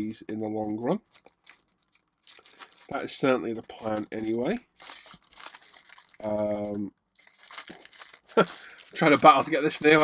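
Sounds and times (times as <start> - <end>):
plastic bag crinkling: 0.5 - 10.0.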